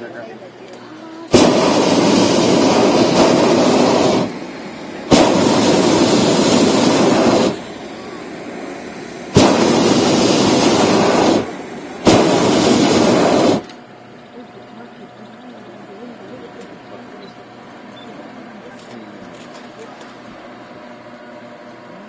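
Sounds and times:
propane burner blasts: 0.0 - 22.0.

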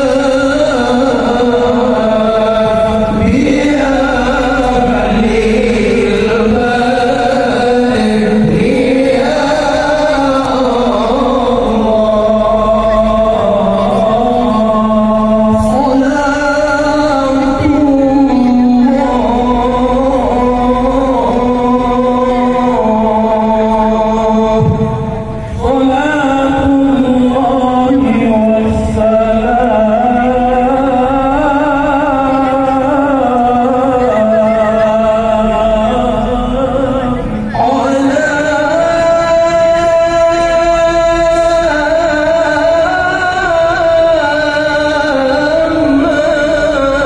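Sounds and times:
devotional chanting over loudspeakers: 0.0 - 47.0.

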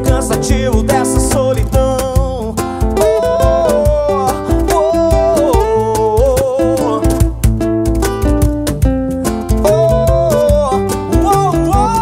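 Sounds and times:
acoustic guitars strumming and picking: 0.0 - 12.0
cajon beat: 0.0 - 12.0
wordless sung melody: 0.0 - 12.0.

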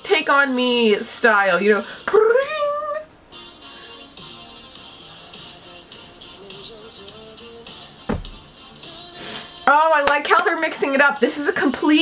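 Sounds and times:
pop-rock song playing quietly: 3.4 - 12.0.

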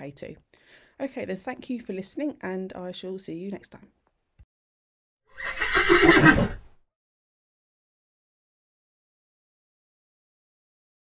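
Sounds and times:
horse whinny: 5.3 - 6.7.

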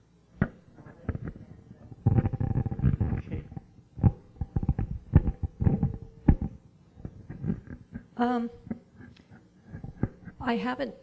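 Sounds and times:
microphone handling noise: 0.4 - 10.5
knocks on microphone body: 4.0 - 8.0.

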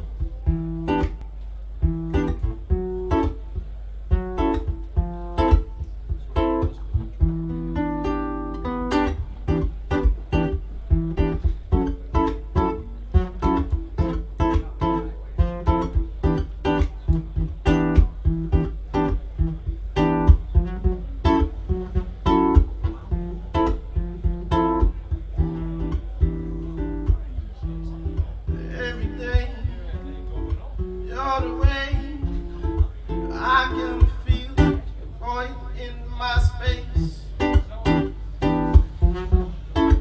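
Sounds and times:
classical guitar playing: 0.0 - 40.0.

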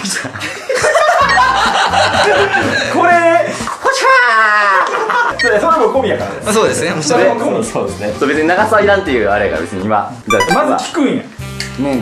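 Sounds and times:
people laughing: 0.0 - 3.1
background music: 10.3 - 10.9.

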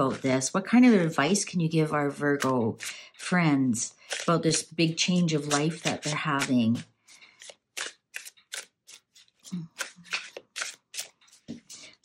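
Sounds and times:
cards being shuffled: 4.0 - 12.0.

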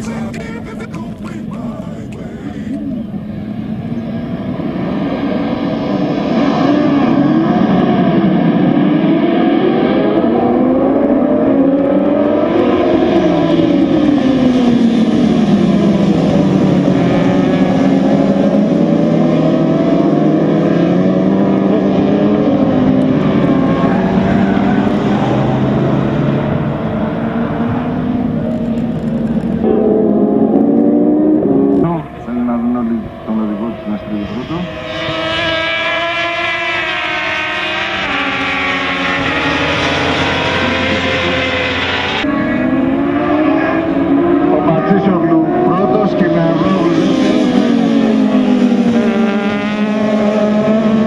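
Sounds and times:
sport bike engines revving: 0.0 - 51.0.

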